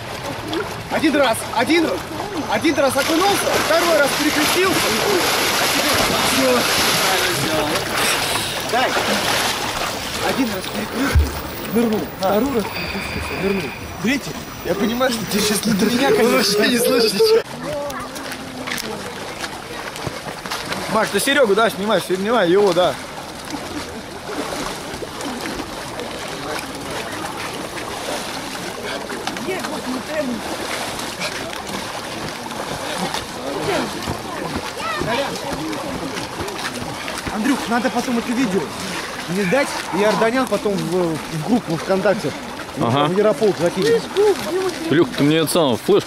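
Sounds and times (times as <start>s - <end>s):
voices: 0.0s - 20.0s
icy water splashing: 0.0s - 46.0s.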